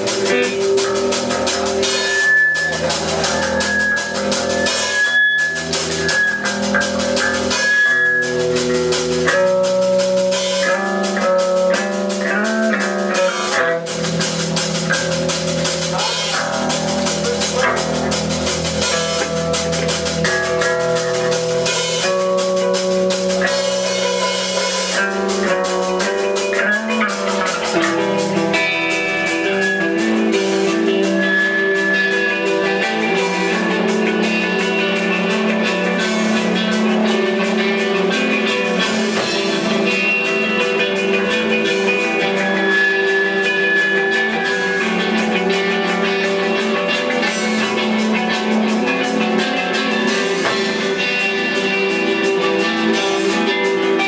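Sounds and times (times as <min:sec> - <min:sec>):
drum kit: 0:00.0 - 0:54.0
electric guitar through amplifier: 0:00.0 - 0:54.0.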